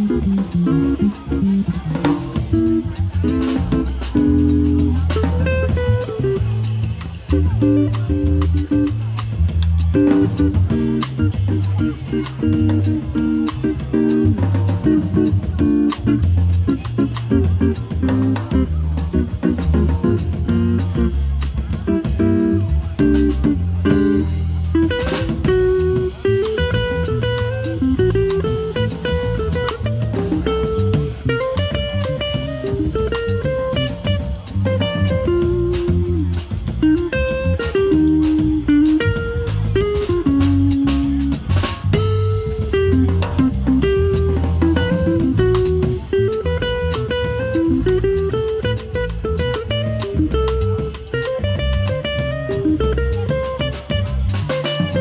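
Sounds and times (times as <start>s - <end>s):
drum kit playing: 0.0s - 55.0s
electric bass: 0.0s - 55.0s
electric guitar melody: 0.0s - 55.0s.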